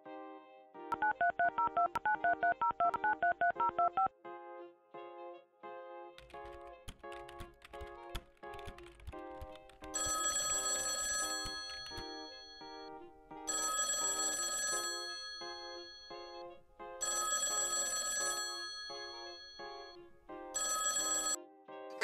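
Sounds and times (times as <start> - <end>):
background music: 0.0 - 22.0
telephone ringing: 0.9 - 4.1, 10.0 - 21.4.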